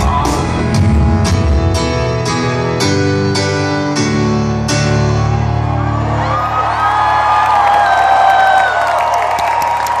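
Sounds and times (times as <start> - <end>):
crowd cheering and whooping: 4.9 - 10.0
scattered clapping: 7.7 - 10.0.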